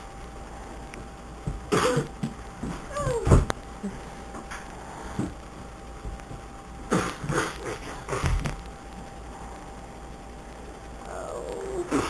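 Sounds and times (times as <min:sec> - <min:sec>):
child coughing: 0:01.7 - 0:02.1.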